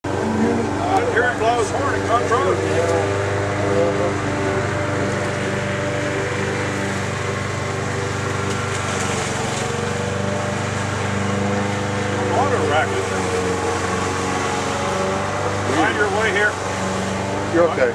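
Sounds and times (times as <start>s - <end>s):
diesel locomotive droning: 0.0s - 17.9s.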